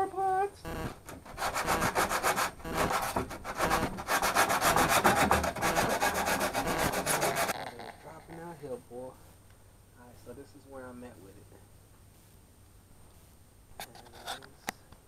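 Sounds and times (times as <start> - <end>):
sandpaper rubbing by hand: 1.2 - 8.2.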